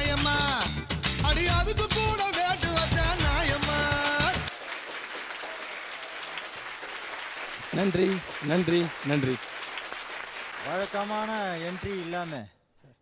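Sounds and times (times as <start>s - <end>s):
song music: 0.0s - 4.5s
audience applauding: 4.4s - 12.5s.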